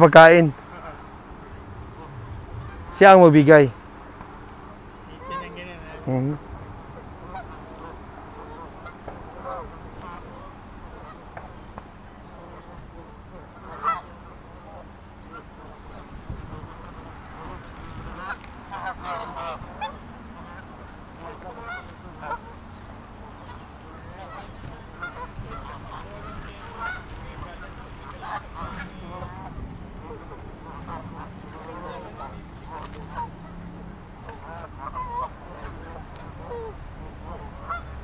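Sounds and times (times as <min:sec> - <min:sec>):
geese honking and calling: 0:00.0 - 0:38.0.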